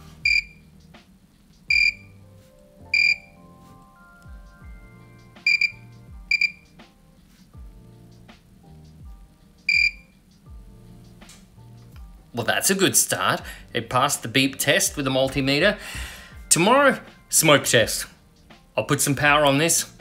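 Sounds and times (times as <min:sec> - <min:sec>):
quiet background music: 0:00.0 - 0:20.0
multimeter short high beeps: 0:00.2 - 0:00.6, 0:01.7 - 0:02.1, 0:02.9 - 0:03.3, 0:05.4 - 0:06.6, 0:09.7 - 0:10.1.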